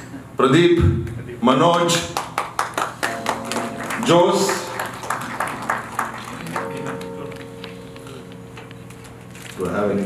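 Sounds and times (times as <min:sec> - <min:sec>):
audience clapping: 0:01.6 - 0:08.9.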